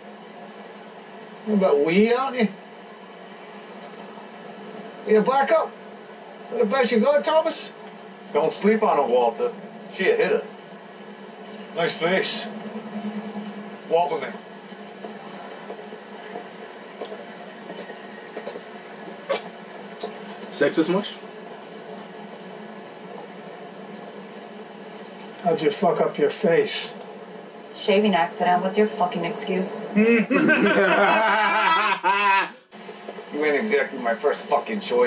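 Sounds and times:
faint even hum: 0.0s - 35.0s
outdoor city ambience: 0.0s - 35.0s
steady background hiss: 0.0s - 35.0s.

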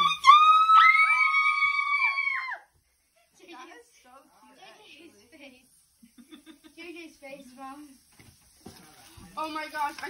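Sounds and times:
girls squealing: 0.0s - 2.7s.

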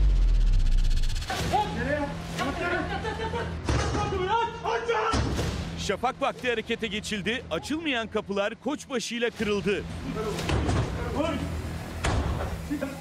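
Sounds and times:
deep booming hit: 0.0s - 1.6s.

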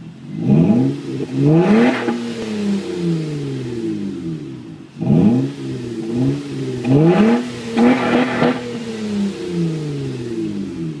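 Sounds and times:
car exhaust drone falling in pitch: 0.0s - 11.0s.

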